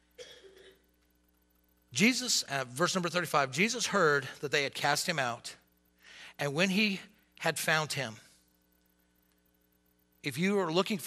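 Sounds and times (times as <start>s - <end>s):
faint electrical hum: 0.0s - 11.0s
man speaking: 2.0s - 5.6s, 6.4s - 8.3s, 10.2s - 11.0s.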